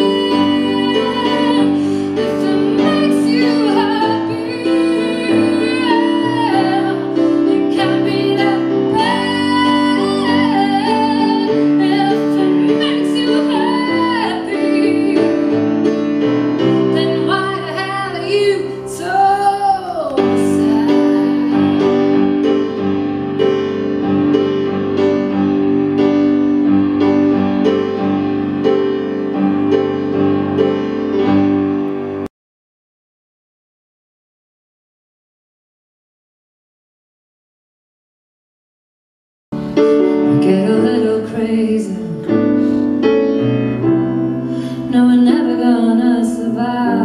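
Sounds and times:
woman singing: 0.0s - 15.9s, 16.6s - 22.5s, 40.2s - 42.6s, 44.7s - 47.0s
keyboard chords: 0.0s - 32.3s, 39.6s - 47.0s.

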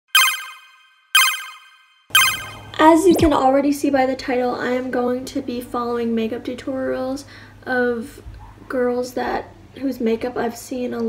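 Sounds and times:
electronic chime: 0.1s - 2.9s.

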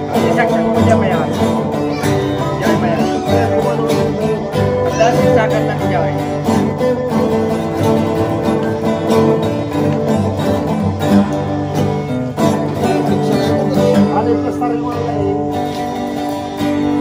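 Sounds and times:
acoustic guitars strumming and picking: 0.0s - 17.0s.

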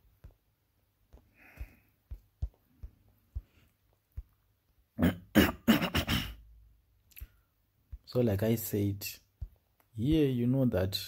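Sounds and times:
person coughing harshly: 5.0s - 6.4s.

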